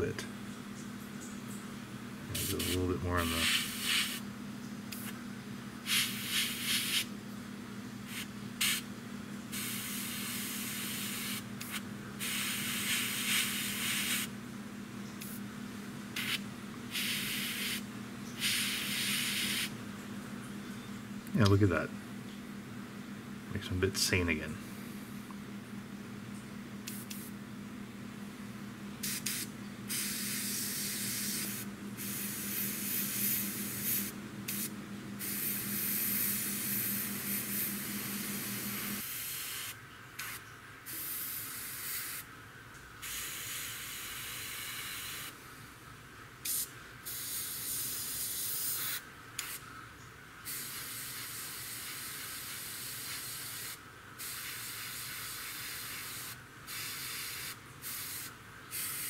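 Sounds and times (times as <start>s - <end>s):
airbrush spraying hiss: 2.3s - 4.2s, 5.9s - 7.1s, 8.1s - 8.8s, 9.5s - 14.3s, 16.2s - 17.8s, 18.4s - 19.7s, 29.0s - 42.2s, 46.4s - 49.6s, 50.5s - 59.0s.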